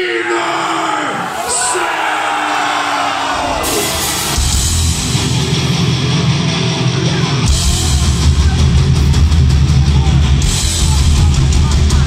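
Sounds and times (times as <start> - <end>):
crowd noise: 0.0 - 12.0
drums: 2.5 - 12.0
distorted electric guitars: 3.2 - 12.0.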